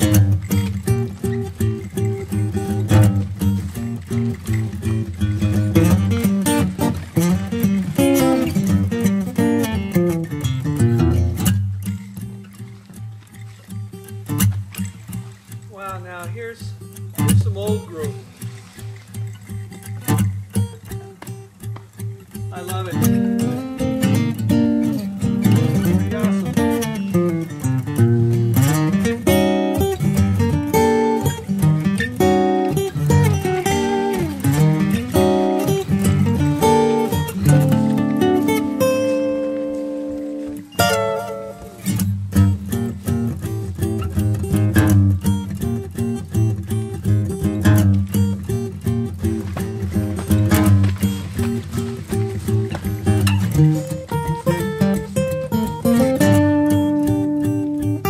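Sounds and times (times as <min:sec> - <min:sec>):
acoustic guitar music: 0:00.0 - 0:58.0.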